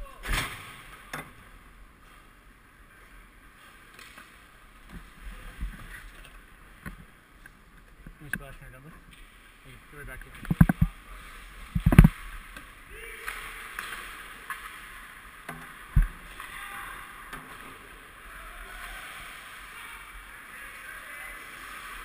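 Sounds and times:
arena noise: 0.0s - 22.0s.

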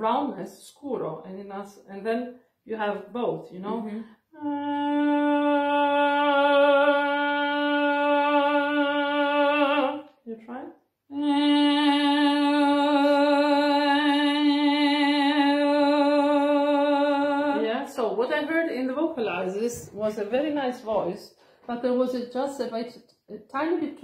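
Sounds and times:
short breath: 21.3s - 21.7s.

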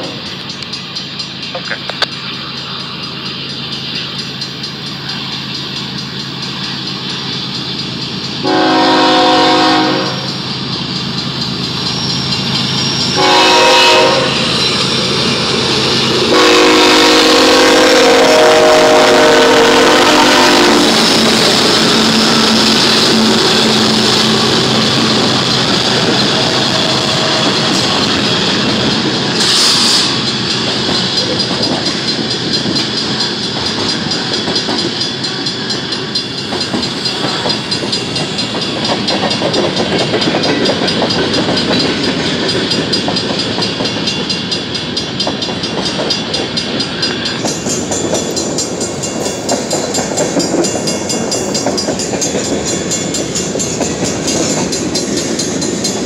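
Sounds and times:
train rumbling past: 0.0s - 56.0s
wheels clacking over rail joints: 0.0s - 56.0s
locomotive air horn blasts: 8.4s - 10.4s, 13.1s - 14.4s, 16.2s - 21.4s
air hiss: 21.6s - 31.1s.

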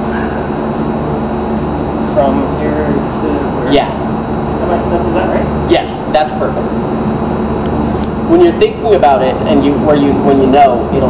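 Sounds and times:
low mechanical hum with hiss: 0.0s - 11.0s.

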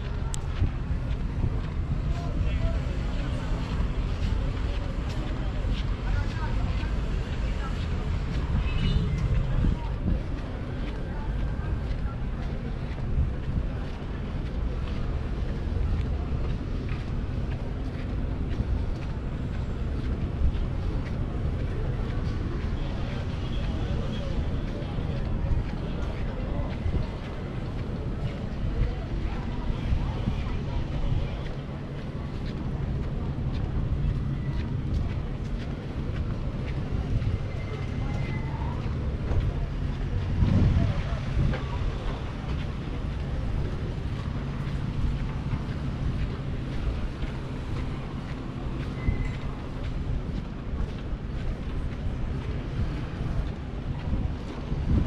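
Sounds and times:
people talking nearby: 0.0s - 55.0s
road traffic: 0.0s - 55.0s
wind on microphone: 0.0s - 55.0s.

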